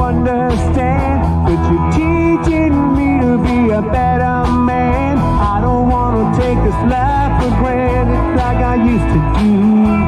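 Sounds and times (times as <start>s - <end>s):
drums with a steady beat: 0.0s - 10.0s
electric guitars: 0.0s - 10.0s.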